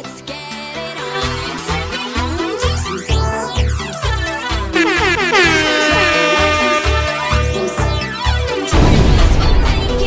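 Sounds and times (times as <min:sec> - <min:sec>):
electronic dance music beat: 0:04.8 - 0:07.9
loud horn-like tone sliding down: 0:04.8 - 0:08.4.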